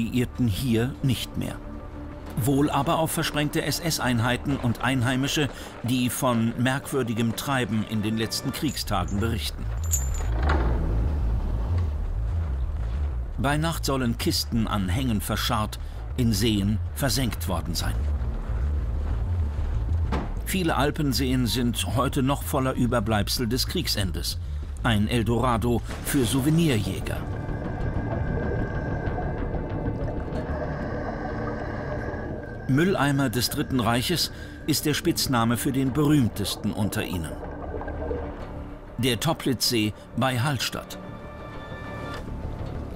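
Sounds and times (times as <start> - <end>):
deep low rumble: 9.6 - 22.5, 23.3 - 39.0
ambient drone of held tones: 27.2 - 38.0.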